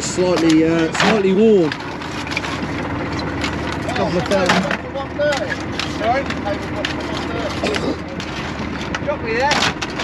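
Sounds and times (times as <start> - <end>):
low engine hum: 0.0 - 10.0
voices talking: 0.0 - 10.0
scallop shells clacking: 0.2 - 10.0.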